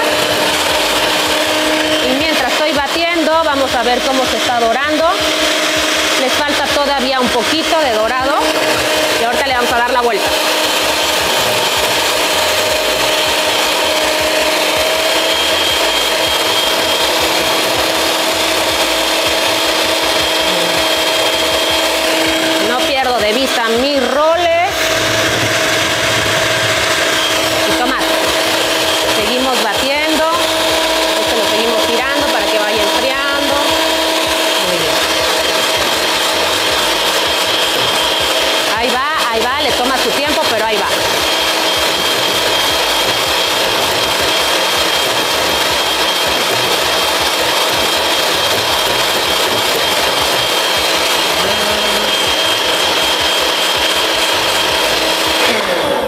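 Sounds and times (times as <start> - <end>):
electric hand mixer whipping cream: 0.0 - 56.0.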